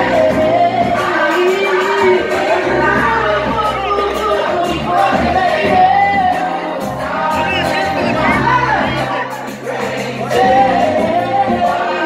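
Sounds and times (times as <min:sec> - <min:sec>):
amplified backing music: 0:00.0 - 0:12.0
woman singing into microphone: 0:00.0 - 0:12.0.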